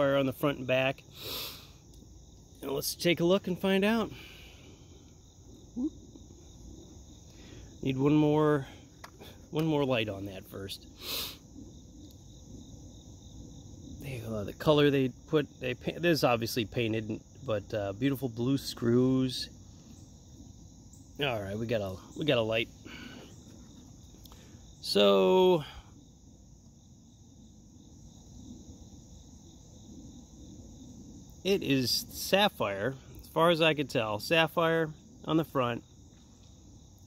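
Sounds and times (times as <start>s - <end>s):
insects chirring: 0.0s - 37.0s.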